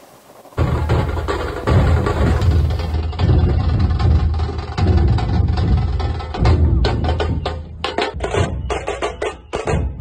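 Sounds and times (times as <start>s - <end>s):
dhol drums beating: 0.6s - 10.0s.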